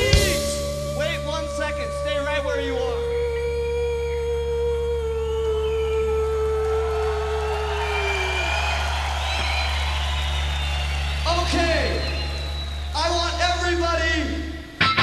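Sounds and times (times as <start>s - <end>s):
low amplifier hum: 0.0s - 8.0s
crowd cheering: 5.6s - 15.0s.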